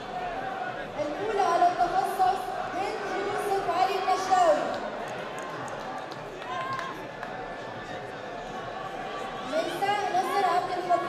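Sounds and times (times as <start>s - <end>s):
crowd murmur: 0.0s - 11.0s
woman speaking over loudspeakers: 1.0s - 4.8s, 9.5s - 11.0s.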